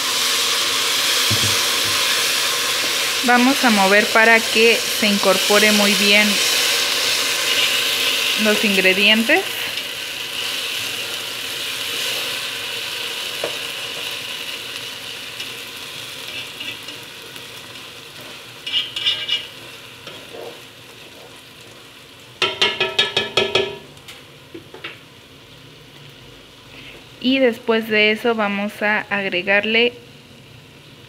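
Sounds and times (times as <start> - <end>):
rice sizzling in a pot: 0.0 - 31.0
spatula stirring: 17.7 - 21.8.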